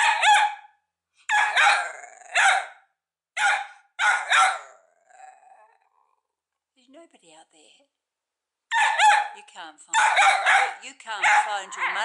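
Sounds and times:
puppy barking high-pitched: 0.0s - 2.8s, 3.4s - 4.8s, 8.7s - 12.0s.

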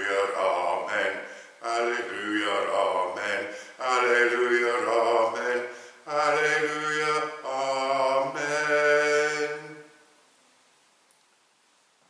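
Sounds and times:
slow church singing: 0.0s - 10.3s.

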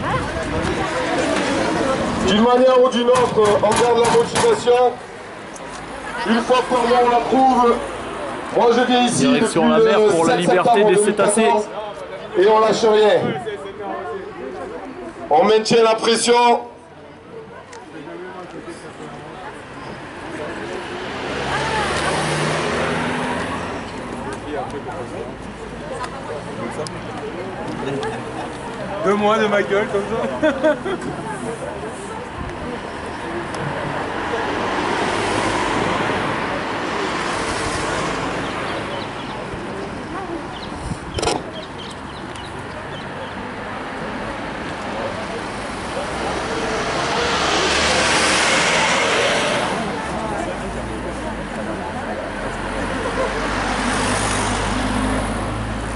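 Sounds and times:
car passing: 18.7s - 30.4s, 31.2s - 55.9s
car driving past: 20.4s - 24.0s, 44.4s - 55.9s.

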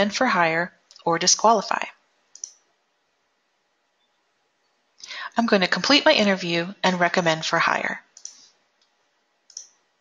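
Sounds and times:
computer mouse click: 2.3s - 2.7s, 8.2s - 9.8s.

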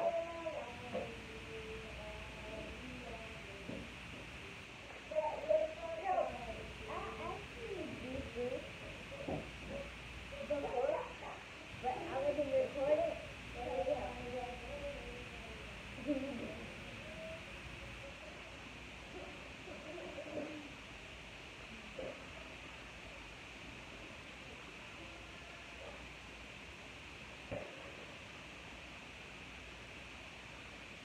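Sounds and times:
girl murmuring and humming: 0.0s - 18.0s.

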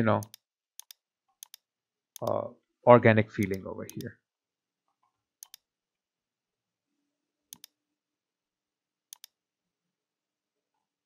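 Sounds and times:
computer mouse clicks: 0.2s - 2.4s, 5.4s - 5.7s, 7.5s - 7.8s, 9.1s - 9.4s.

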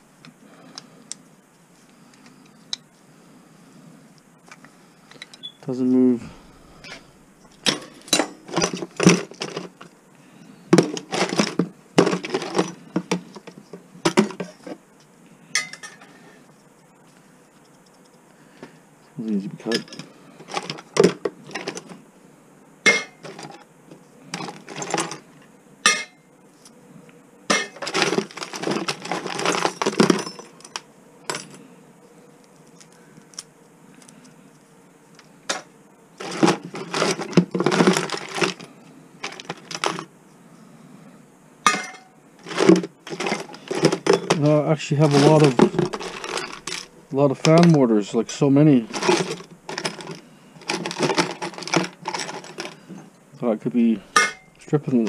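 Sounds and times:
metal scrap clinking in plastic bin: 7.6s - 9.7s, 10.8s - 13.2s, 27.6s - 31.5s, 36.2s - 40.1s, 41.7s - 44.5s, 45.1s - 47.8s, 48.9s - 52.8s.

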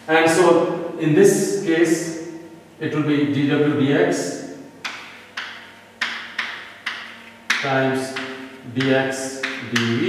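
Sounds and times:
chalk tapping on blackboard: 4.8s - 10.0s.

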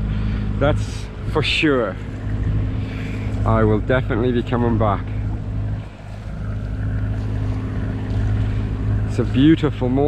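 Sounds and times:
boat engine droning: 0.0s - 10.0s
water rushing along hull: 0.0s - 10.0s.

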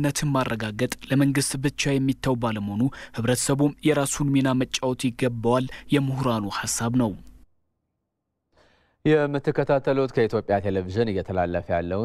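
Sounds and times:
man speaking: 0.0s - 7.3s
person speaking: 0.0s - 7.4s
faint breath: 8.5s - 9.0s.

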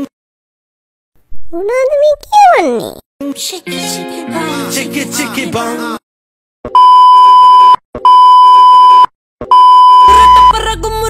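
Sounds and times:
long electronic beeps: 6.8s - 10.5s.

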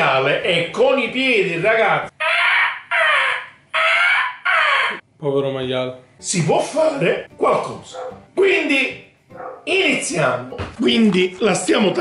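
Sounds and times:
pig squealing: 2.1s - 5.0s.

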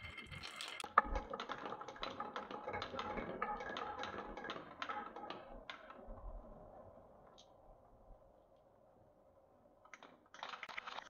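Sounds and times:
marbles clicking on wooden run: 0.0s - 5.1s.

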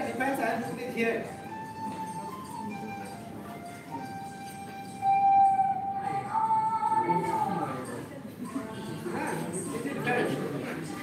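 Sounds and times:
music from phone speaker: 1.3s - 6.2s.

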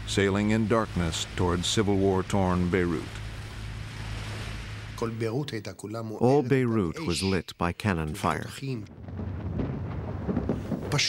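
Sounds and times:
distant artillery rumble: 8.8s - 11.0s
faint dull thuds: 9.0s - 11.0s.

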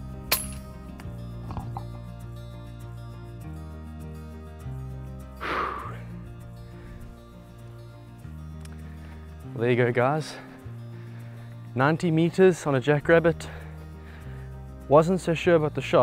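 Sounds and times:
background music with bass chords: 0.0s - 16.0s.

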